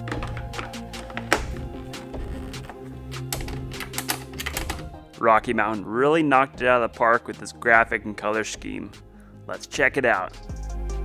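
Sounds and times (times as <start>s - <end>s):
sharp clicks: 3.3s - 4.9s.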